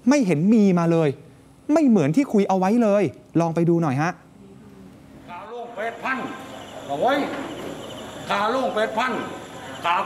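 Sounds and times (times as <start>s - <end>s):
crickets chirring: 5.3s - 10.0s.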